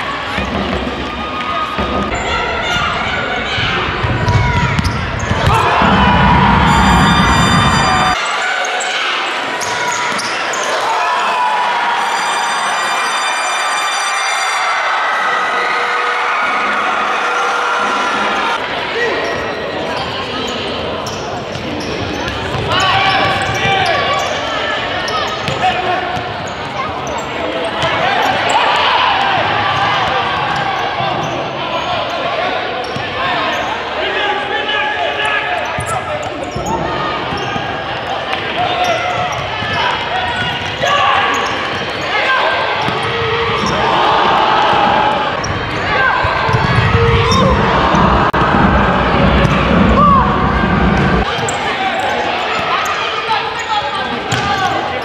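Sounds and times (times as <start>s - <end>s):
indistinct voices: 0.0s - 55.0s.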